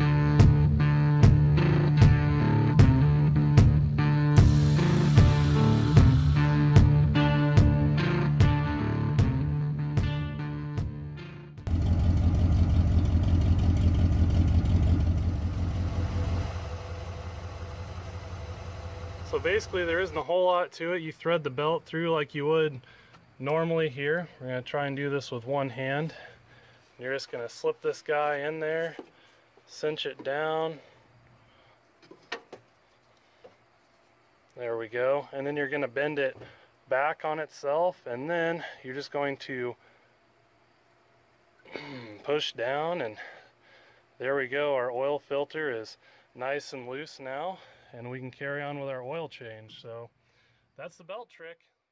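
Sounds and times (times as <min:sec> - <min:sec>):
guitar music: 0:00.0 - 0:11.7
pickup truck engine idling: 0:11.7 - 0:20.2.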